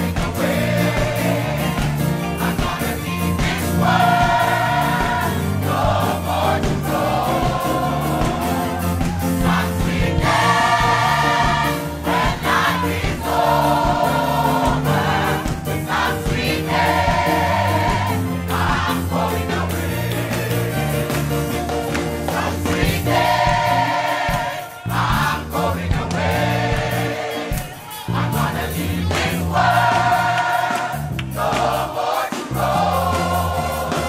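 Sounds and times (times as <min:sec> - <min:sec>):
band with steady beat: 0:00.0 - 0:34.0
gospel choir singing: 0:00.0 - 0:34.0.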